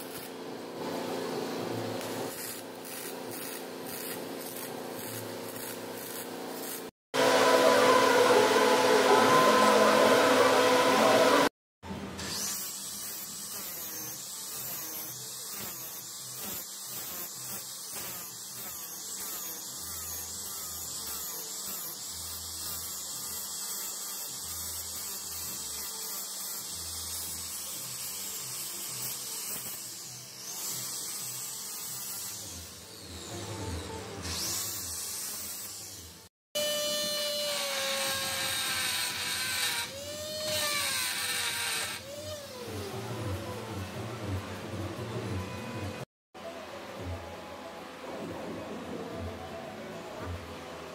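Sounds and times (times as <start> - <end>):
angle grinder grinding metal: 0.0 - 0.4, 1.9 - 11.5, 12.2 - 43.6
die grinder whine: 0.0 - 46.1.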